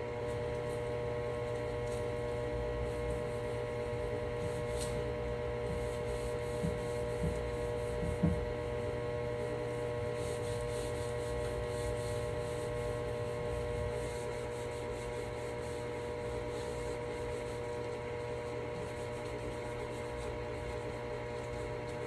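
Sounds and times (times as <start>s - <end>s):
steady electrical hum: 0.0s - 22.0s
cloth rubbing on wood: 0.2s - 22.0s.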